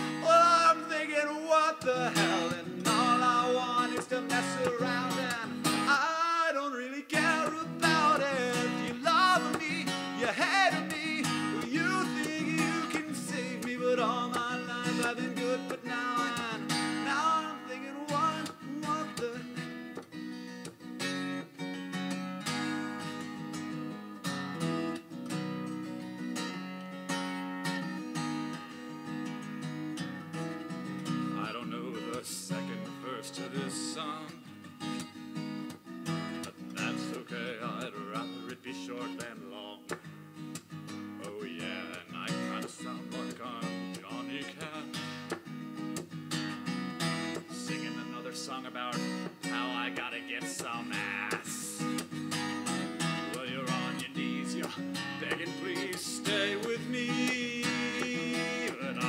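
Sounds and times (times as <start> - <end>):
man singing: 0.0 - 19.9, 31.2 - 34.6, 36.3 - 40.1, 41.1 - 45.4, 47.1 - 59.0
acoustic guitar strumming: 0.0 - 59.0.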